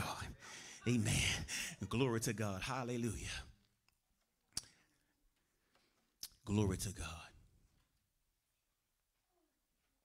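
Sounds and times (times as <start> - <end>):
man's voice: 0.0 - 3.7, 6.3 - 7.5.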